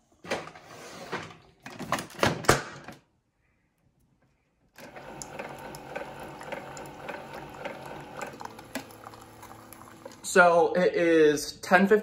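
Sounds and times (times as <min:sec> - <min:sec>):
coffee streaming into mug: 0:04.8 - 0:10.4
coffee brewer whirring: 0:04.8 - 0:10.6.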